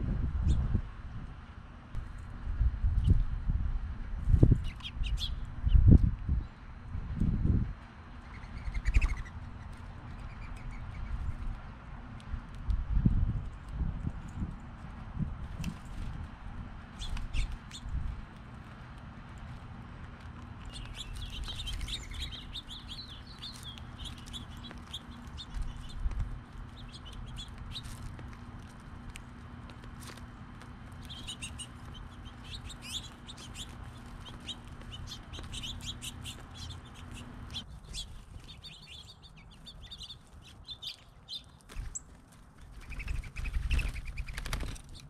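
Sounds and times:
steady low rumble: 0:00.0 - 0:45.0
songbirds chirping: 0:04.5 - 0:45.0
dove wings flapping: 0:41.7 - 0:45.0.

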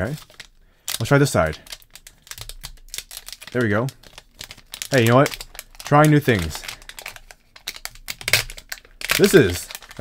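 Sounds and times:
card pack wrapper crinkling: 0:00.0 - 0:10.0.

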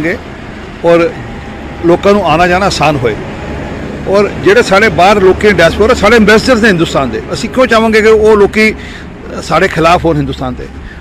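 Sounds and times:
road traffic rumble: 0:00.0 - 0:11.0
man speaking: 0:00.8 - 0:03.2, 0:04.0 - 0:11.0.

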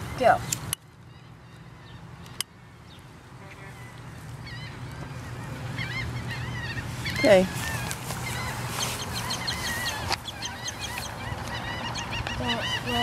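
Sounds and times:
bird calling: 0:00.0 - 0:13.0.

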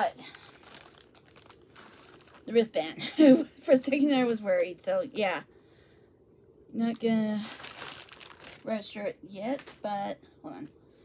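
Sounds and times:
packaging crinkling: 0:00.2 - 0:02.7, 0:07.3 - 0:09.8.

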